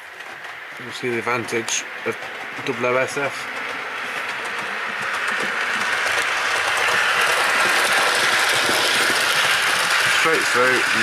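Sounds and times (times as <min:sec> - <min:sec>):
model train whirring: 0:00.0 - 0:11.0
wheel clicking: 0:01.5 - 0:11.0.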